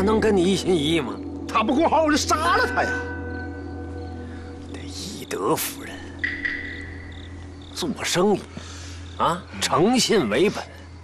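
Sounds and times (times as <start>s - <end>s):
crickets chirping: 0.0s - 11.0s
low steady hum: 0.0s - 11.0s.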